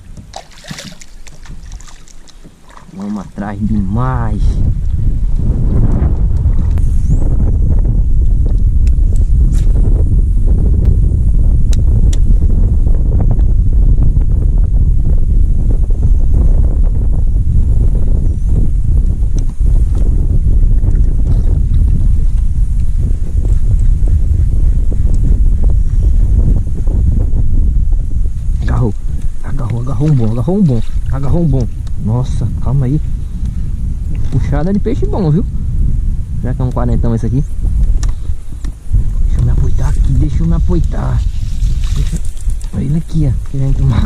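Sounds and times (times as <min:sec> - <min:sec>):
wind buffeting microphone: 0:00.0 - 0:44.0.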